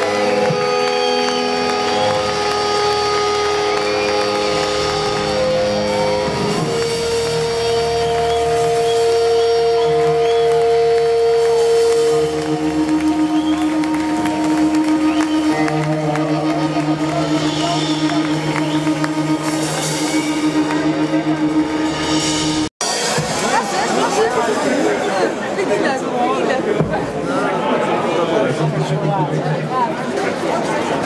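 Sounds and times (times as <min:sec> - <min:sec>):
rock band playing: 0:00.0 - 0:24.8.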